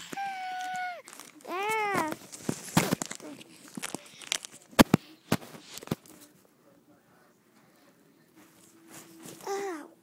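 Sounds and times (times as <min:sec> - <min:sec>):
rustling and handling noises: 0:00.0 - 0:06.6, 0:07.5 - 0:09.9.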